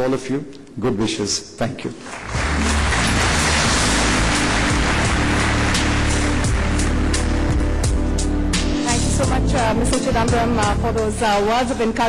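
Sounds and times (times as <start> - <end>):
audience applauding: 1.9 - 7.9
music: 2.0 - 12.0.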